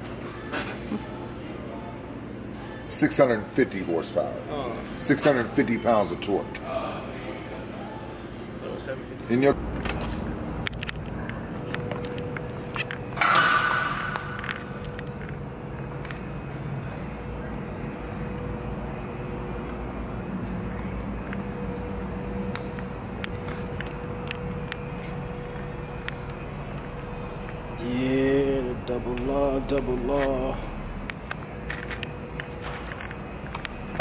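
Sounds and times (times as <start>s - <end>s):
steady background hum: 0.0s - 34.0s.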